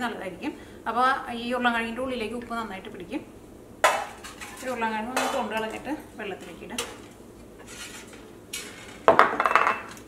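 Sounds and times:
glass bowl scraping: 7.6 - 9.2.

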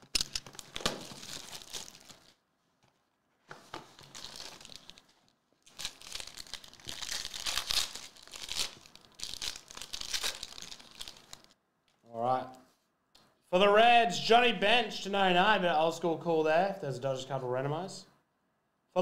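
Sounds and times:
foil wrapper crinkling: 0.0 - 11.6.

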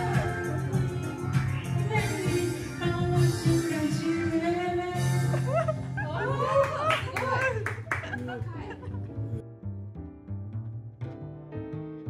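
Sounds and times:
people talking: 6.0 - 8.9
hand claps: 6.6 - 8.4.

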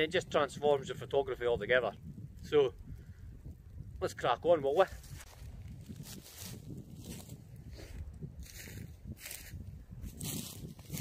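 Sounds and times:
wind rumble on microphone: 0.0 - 11.0
footsteps crunching through snow: 4.8 - 11.0.

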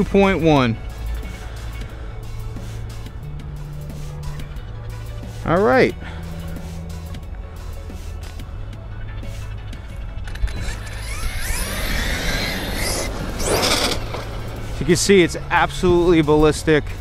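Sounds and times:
background music: 0.0 - 17.0
tyres hissing on asphalt: 1.2 - 3.1
electric motor whining: 10.3 - 15.2.

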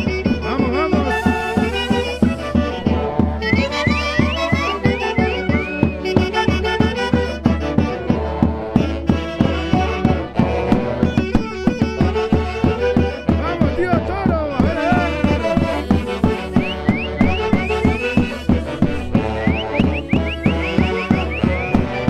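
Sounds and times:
bass drum beat: 0.0 - 22.0
wind band playing dance tune: 0.0 - 22.0.

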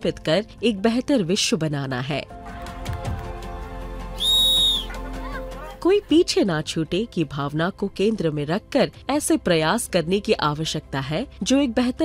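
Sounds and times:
soft background music: 0.0 - 12.0
shrill whistle blast: 4.2 - 4.9.

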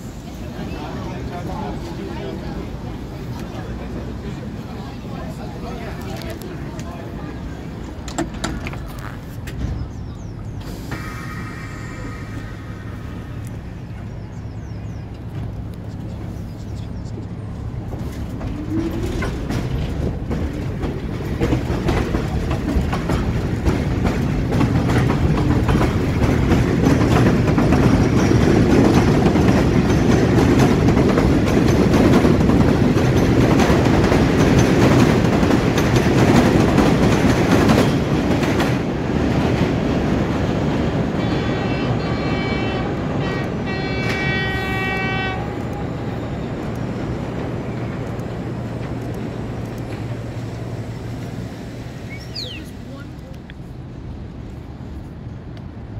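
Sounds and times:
train rumbling on steel tracks: 0.0 - 55.9
train horn: 41.1 - 46.2.

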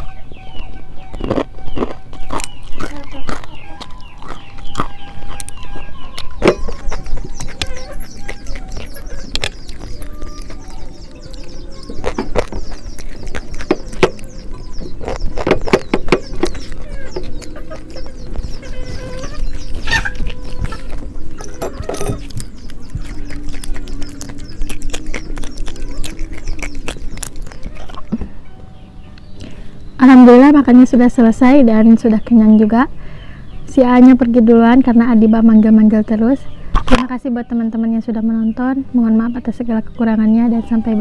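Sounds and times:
chickens clucking: 0.0 - 29.8, 35.0 - 41.0.

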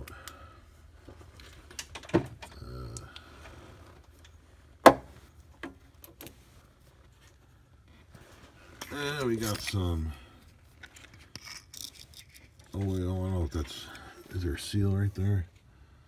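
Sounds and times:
person mumbling: 2.5 - 3.2.

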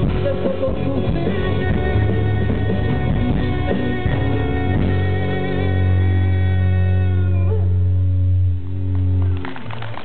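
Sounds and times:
deep bass note: 0.0 - 9.7.

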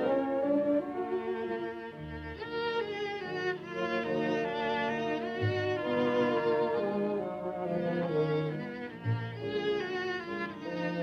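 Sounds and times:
bowed-string film score: 0.0 - 11.0.

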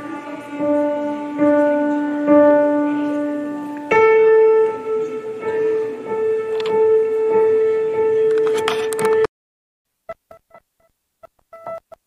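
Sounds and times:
music with held tone: 0.0 - 9.3
short beeps: 11.5 - 12.0.

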